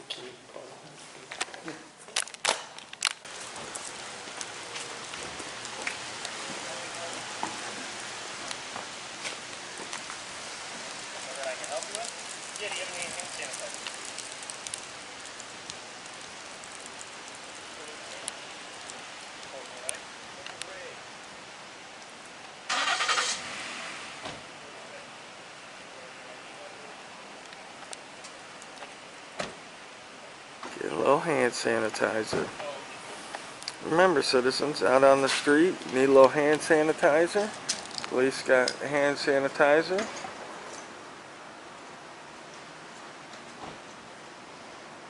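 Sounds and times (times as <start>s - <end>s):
rushing outdoor noise: 2.5s - 45.0s
light footsteps: 2.9s - 19.7s
car engine starting: 22.7s - 24.5s.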